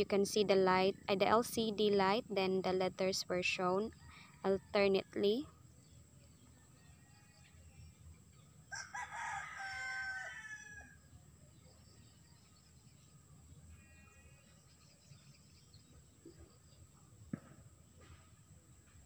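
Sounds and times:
rooster crowing: 8.7s - 11.0s.

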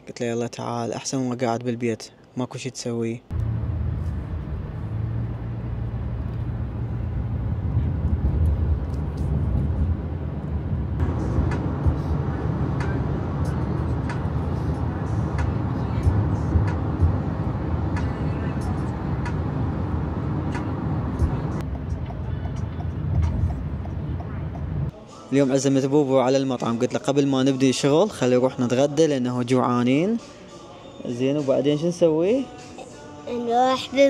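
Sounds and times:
car cabin road and engine rumble: 3.3s - 24.9s.

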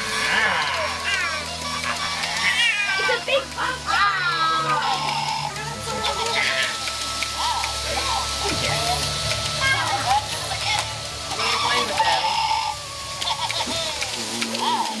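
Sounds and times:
children squealing and babbling: 0.0s - 6.8s, 7.4s - 15.0s.

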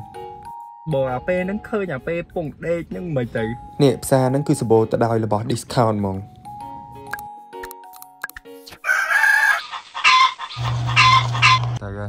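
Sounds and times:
rooster crowing: 8.8s - 11.8s.

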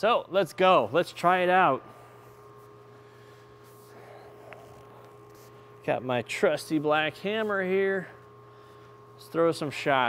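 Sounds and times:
electrical hum: 0.0s - 10.0s.

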